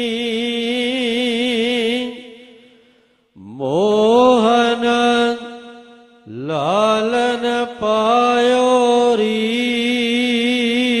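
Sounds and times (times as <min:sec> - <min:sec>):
man singing devotional chant: 0:00.0 - 0:11.0.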